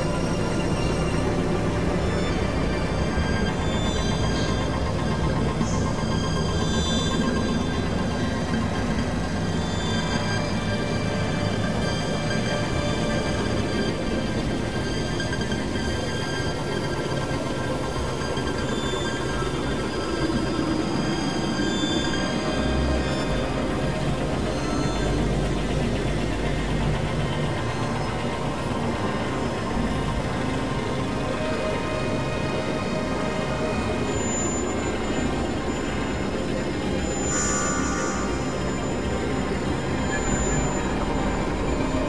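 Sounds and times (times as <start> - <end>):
rumbling synthesizer drone: 0.0 - 42.0
thin steady high tones: 0.0 - 42.0
high whistling tone: 30.2 - 42.0.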